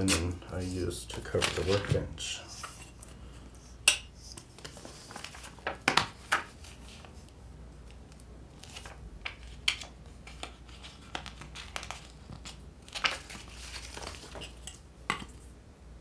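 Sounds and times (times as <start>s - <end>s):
paper crackles: 0.0s - 2.3s, 4.3s - 14.7s
magazine paper rustling: 0.0s - 3.2s, 4.3s - 14.8s.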